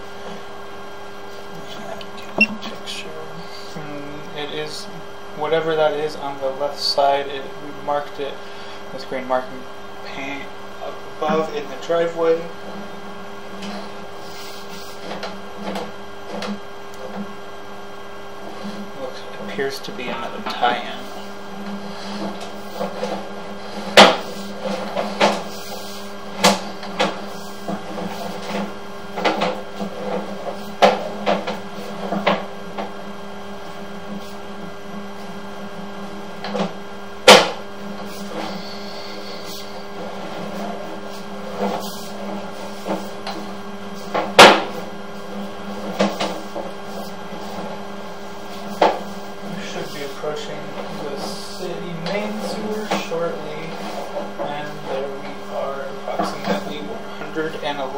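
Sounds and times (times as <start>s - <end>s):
electrical hum: 0.0s - 57.9s.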